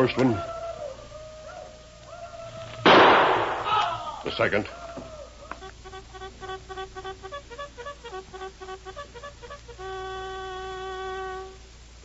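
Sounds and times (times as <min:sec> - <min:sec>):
loud gunshot: 0:02.8 - 0:03.8.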